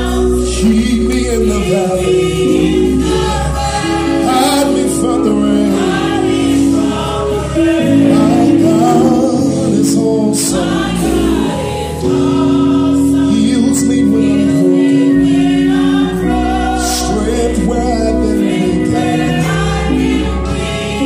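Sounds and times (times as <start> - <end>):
choir singing gospel: 0.0 - 21.0
keyboard sustained chords: 0.0 - 21.0.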